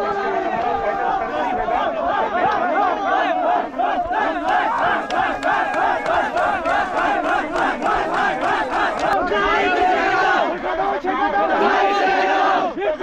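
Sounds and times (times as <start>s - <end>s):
men chanting: 0.0s - 13.0s.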